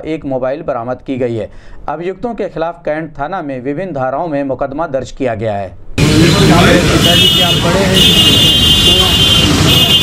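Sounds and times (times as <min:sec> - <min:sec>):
traffic: 0:05.8 - 0:10.0
voices talking: 0:06.0 - 0:10.0.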